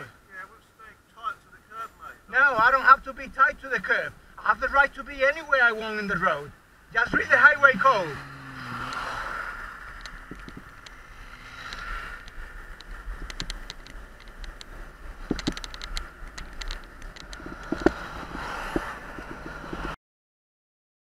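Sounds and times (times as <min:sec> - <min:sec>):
road rumble: 0:00.0 - 0:20.0
wind: 0:00.0 - 0:20.0
bicycle clicks and rattles: 0:09.9 - 0:11.0, 0:11.6 - 0:18.0.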